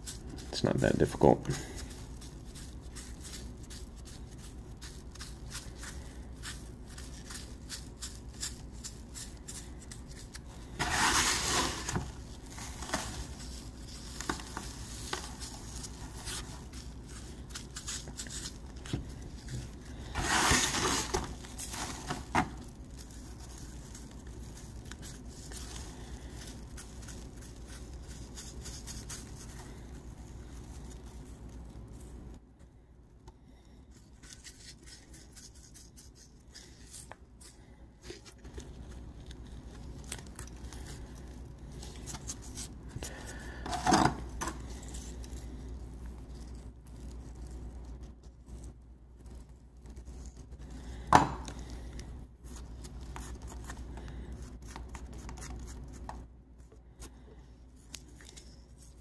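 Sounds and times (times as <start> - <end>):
scraping rustles: 10.4 - 32.3.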